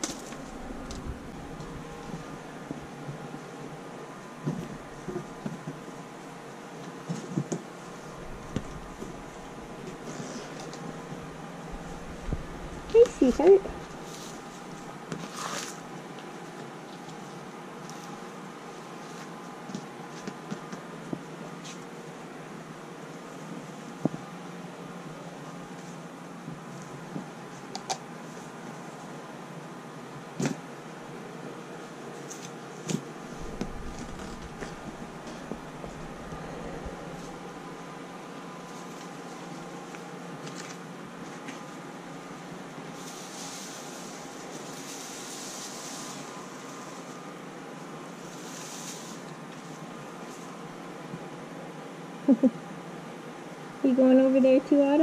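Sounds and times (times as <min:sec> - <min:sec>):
steady hum: 0:00.0 - 0:55.0
fleece and hay rustling: 0:11.2 - 0:15.9, 0:42.8 - 0:50.6.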